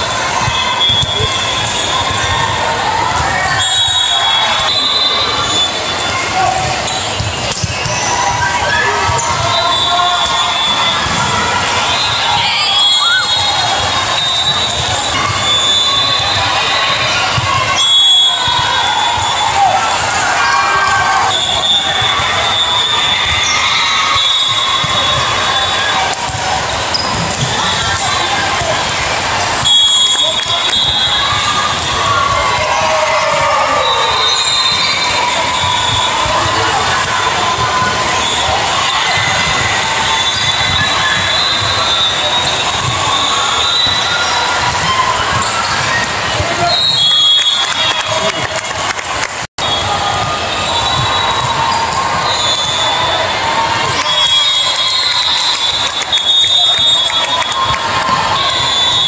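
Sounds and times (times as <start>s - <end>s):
din of many voices: 0.0s - 59.0s
volleyballs struck and bouncing: 0.1s - 20.4s, 21.0s - 49.2s.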